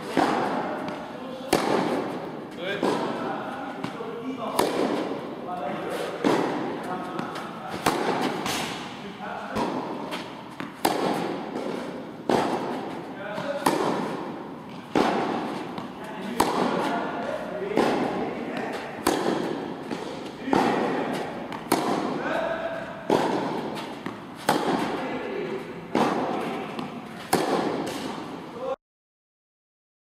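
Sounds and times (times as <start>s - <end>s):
racket hitting tennis ball: 0.0s - 28.5s.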